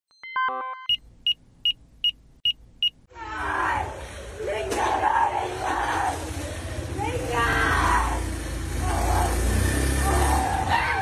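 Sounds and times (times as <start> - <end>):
people's voices: 3.1 - 11.0.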